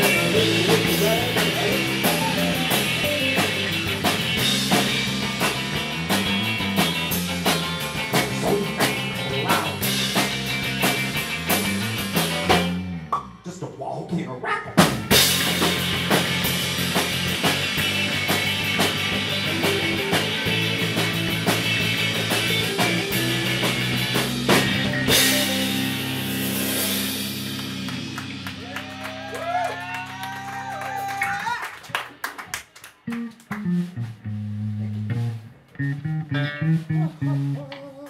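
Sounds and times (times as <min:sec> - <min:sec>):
live rock band playing: 0:00.0 - 0:13.5, 0:14.7 - 0:31.5, 0:32.1 - 0:38.0
bending guitar notes: 0:00.0 - 0:13.6, 0:14.4 - 0:28.9, 0:33.0 - 0:38.0.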